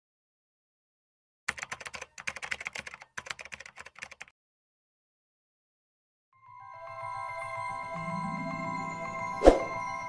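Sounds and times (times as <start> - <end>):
keyboard typing clicks: 1.5 - 4.3.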